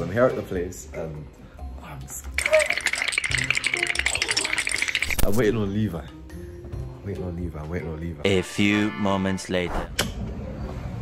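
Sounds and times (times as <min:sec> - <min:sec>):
music: 0:00.0 - 0:11.0
fast rattling clatter: 0:02.4 - 0:05.3.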